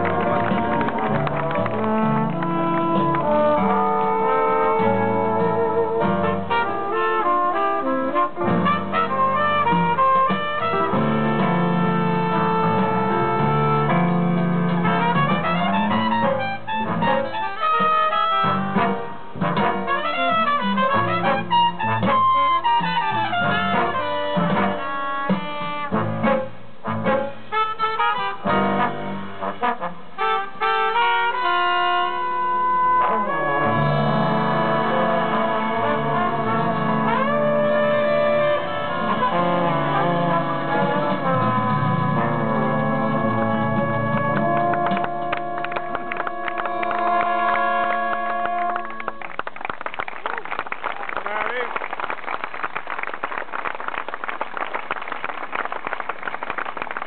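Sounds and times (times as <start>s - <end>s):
brass horns playing chords: 0.0s - 49.4s
live jazz band playing: 0.0s - 49.4s.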